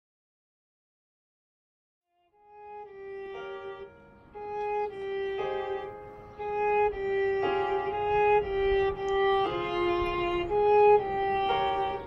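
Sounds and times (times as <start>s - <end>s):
violin playing slow notes: 2.3s - 12.0s.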